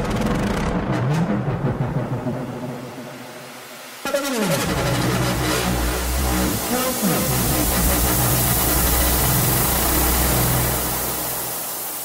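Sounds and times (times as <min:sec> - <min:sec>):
deep bass line: 0:00.0 - 0:03.0, 0:04.1 - 0:11.6
rhythmic synth layers: 0:00.0 - 0:12.0.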